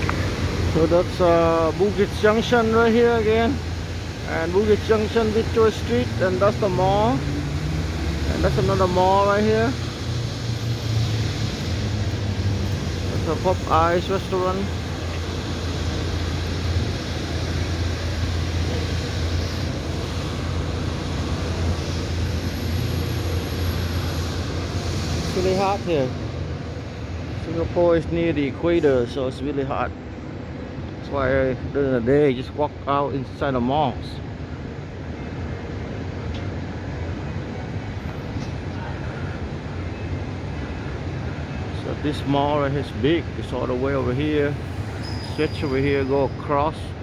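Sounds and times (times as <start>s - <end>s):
distant traffic: 0.0s - 47.0s
urban hum: 0.0s - 47.0s.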